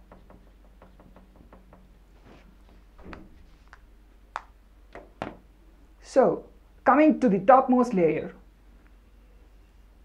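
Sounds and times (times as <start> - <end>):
marker pen writing on whiteboard: 0.0 - 1.8
low room hum: 0.0 - 10.0.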